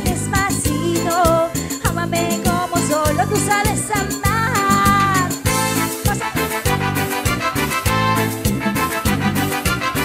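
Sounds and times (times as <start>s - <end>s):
cumbia band playing: 0.0s - 10.0s.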